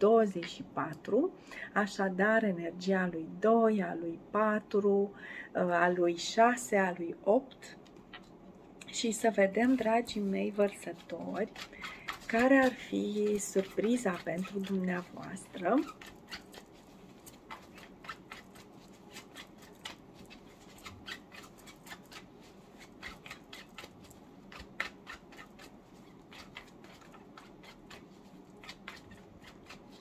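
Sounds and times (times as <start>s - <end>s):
cards being shuffled by hand: 9.6s - 30.0s.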